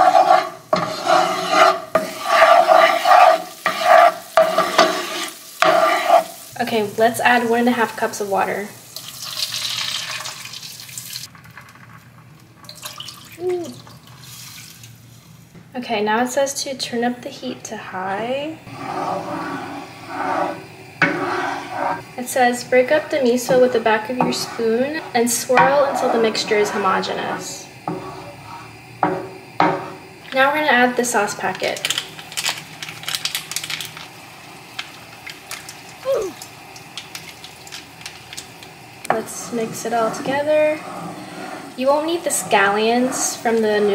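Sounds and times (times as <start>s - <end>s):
water splashing and hissing in hot pan: 0.0s - 11.4s, 12.7s - 15.6s, 18.6s - 43.9s
person humming: 13.4s - 13.8s, 36.0s - 36.4s
foil sachet crinkling and tearing: 31.5s - 38.7s.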